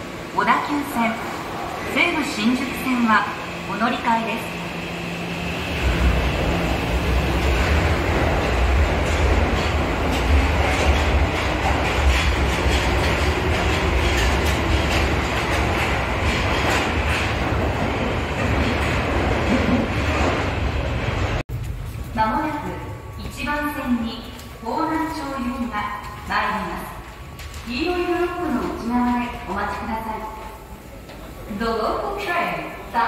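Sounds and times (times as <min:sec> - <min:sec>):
subway train wheels rumbling: 0:00.0 - 0:33.0.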